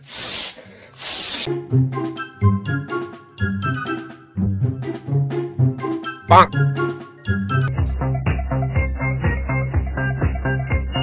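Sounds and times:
bouncy tune with bass line: 2.0 - 11.0.

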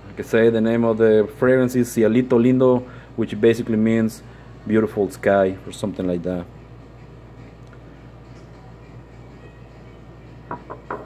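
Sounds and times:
low room hum: 0.0 - 11.0
glass bottle knocks: 10.5 - 11.0.

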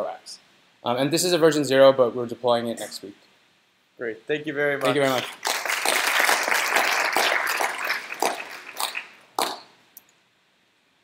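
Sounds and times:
audience applause: 4.8 - 9.7.

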